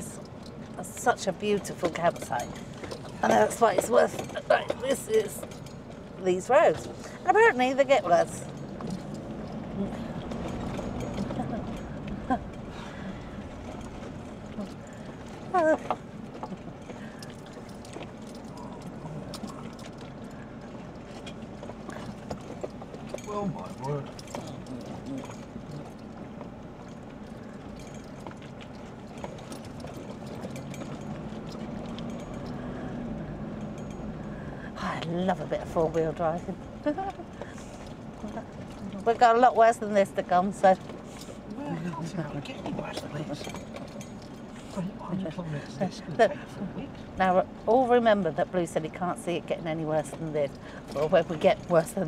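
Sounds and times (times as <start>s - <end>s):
knocks and rattles over bumps: 0.0s - 52.0s
vehicle road rumble: 0.0s - 52.0s.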